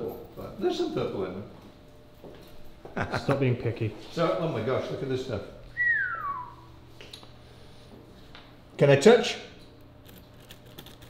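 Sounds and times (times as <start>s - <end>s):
person whistling falling tone: 5.8s - 6.7s.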